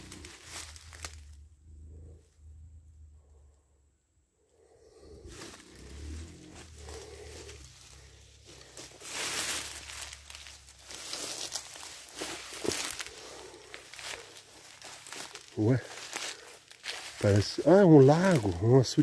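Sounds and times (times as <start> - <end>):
footsteps through undergrowth: 0.0 - 1.4, 4.9 - 19.0
leaves rustling: 0.0 - 1.4, 4.8 - 19.0.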